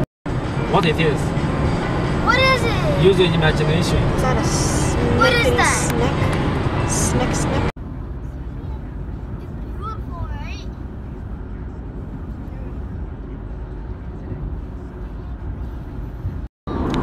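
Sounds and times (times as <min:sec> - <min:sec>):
car cabin road noise: 0:00.0 - 0:17.0.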